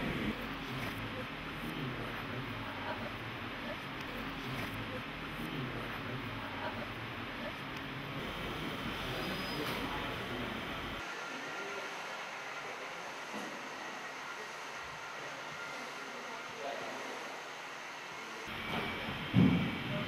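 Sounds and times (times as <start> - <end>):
room hiss and hum: 0.0 - 20.0.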